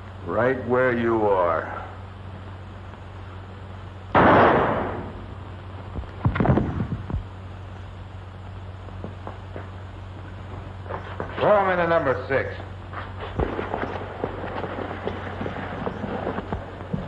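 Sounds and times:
steady low hum: 0:00.0 - 0:17.0
loud pistol shot: 0:04.1 - 0:05.3
quick run of sharp cracks: 0:13.0 - 0:17.0.

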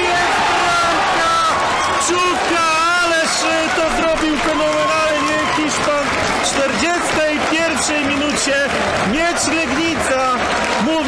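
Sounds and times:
crowd clapping: 0:00.0 - 0:11.0
man talking excitedly: 0:00.0 - 0:11.0
stadium crowd noise: 0:00.0 - 0:11.0.

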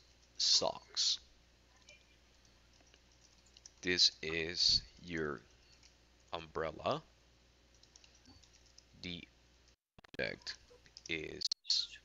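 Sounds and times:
computer keyboard keystrokes: 0:02.7 - 0:03.9, 0:07.7 - 0:08.9
person speaking: 0:03.6 - 0:05.6, 0:10.1 - 0:12.0.

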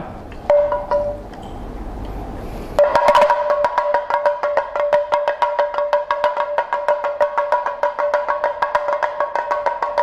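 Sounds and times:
drum ringing tone: 0:00.5 - 0:01.3, 0:02.8 - 0:10.0
hand drum bead strikes: 0:00.5 - 0:01.3, 0:02.8 - 0:10.0.

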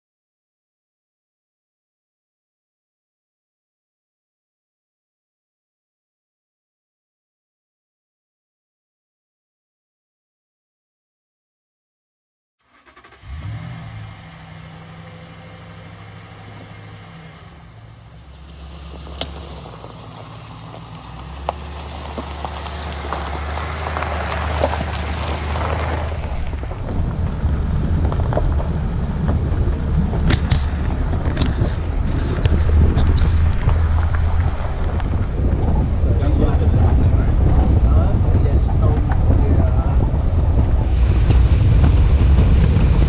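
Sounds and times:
tyres rumbling on dirt road: 0:12.6 - 0:43.0
truck engine running: 0:12.7 - 0:43.0.

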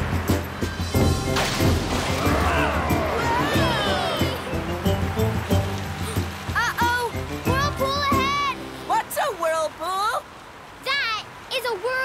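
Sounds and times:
cartoon background music: 0:00.0 - 0:08.7.

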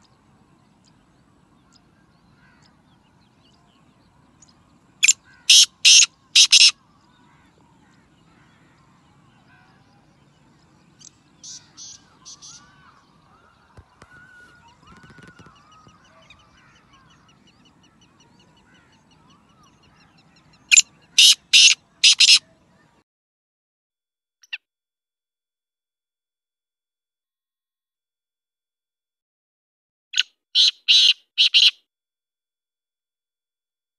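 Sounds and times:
faint bird chirps: 0:00.0 - 0:23.0
francolin harsh grating calls: 0:05.0 - 0:06.8, 0:11.4 - 0:12.9, 0:20.7 - 0:22.4, 0:30.6 - 0:31.8.

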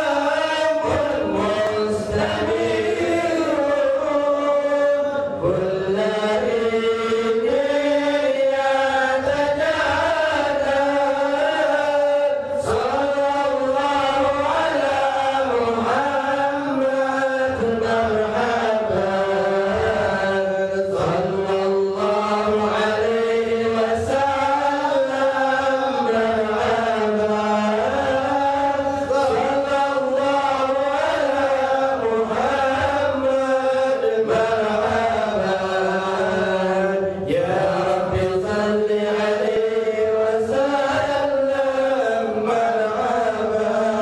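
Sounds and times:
men chanting together: 0:00.0 - 0:44.0.

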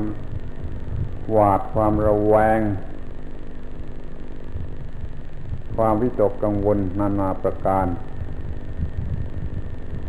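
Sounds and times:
faint low hum: 0:00.0 - 0:10.0
tape hiss: 0:00.0 - 0:10.0.

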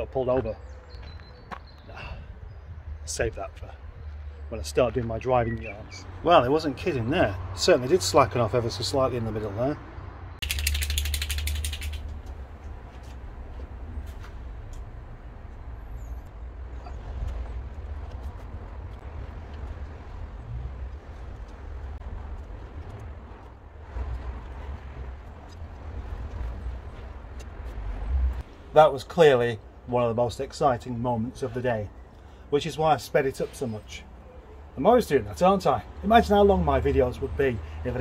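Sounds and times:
ratchet wrench clicking: 0:10.4 - 0:12.1.

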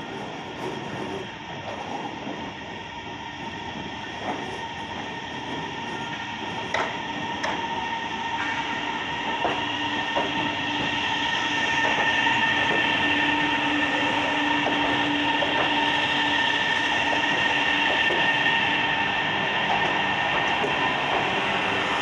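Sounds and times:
electric train drive whine: 0:00.0 - 0:22.0
rumble of train wheels: 0:00.0 - 0:22.0.

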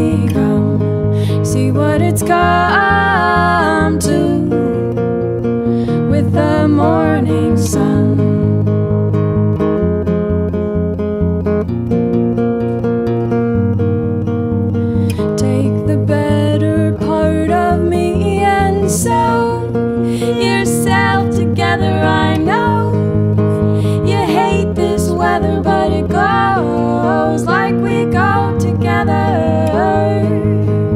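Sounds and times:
acoustic guitars strummed and picked: 0:00.0 - 0:30.9.

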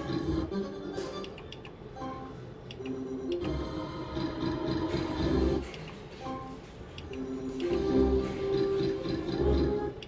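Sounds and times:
slot machine reel-spin tones: 0:00.0 - 0:01.4, 0:02.0 - 0:05.6, 0:06.2 - 0:10.0.

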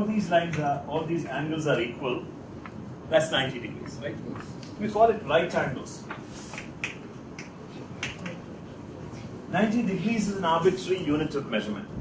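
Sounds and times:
low room noise: 0:00.0 - 0:12.0
chalk tapping on blackboard: 0:06.1 - 0:08.4.

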